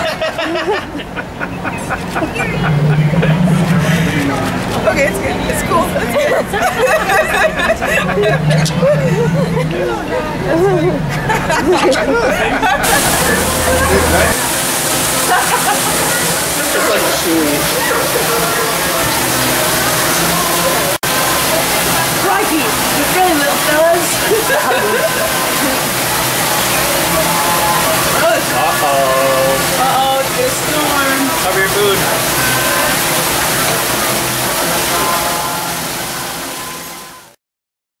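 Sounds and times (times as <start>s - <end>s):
babble of many voices: 0.0s - 37.4s
running water rushing: 1.0s - 12.2s, 12.8s - 37.4s.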